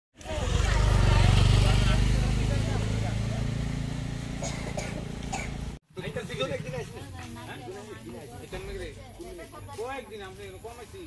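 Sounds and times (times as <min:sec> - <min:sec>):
motorcycle engine idling: 0:00.2 - 0:07.0
people's voices: 0:00.2 - 0:11.0.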